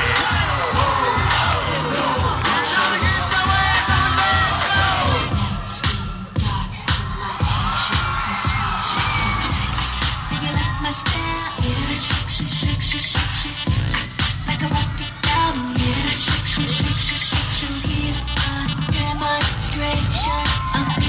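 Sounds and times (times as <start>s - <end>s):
audience cheering and screaming: 0.0s - 21.0s
hip hop dance track: 0.0s - 21.0s.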